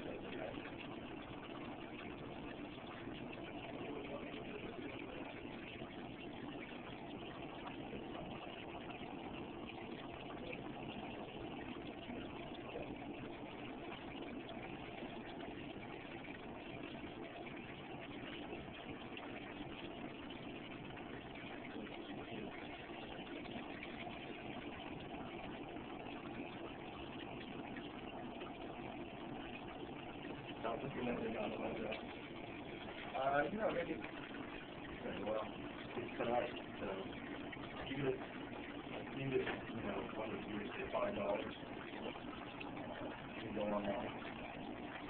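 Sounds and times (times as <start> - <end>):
constant noise: 0.0 - 45.0
steady mechanical hum: 0.0 - 45.0.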